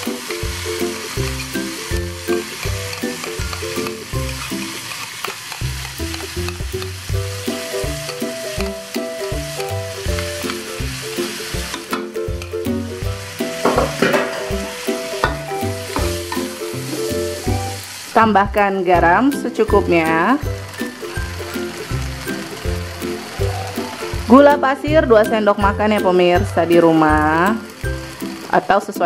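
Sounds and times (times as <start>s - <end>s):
vegetables sizzling in a wok: 0.0s - 29.0s
background music with steady beat: 6.0s - 22.8s
metal spatula knocking on pan: 13.6s - 16.5s.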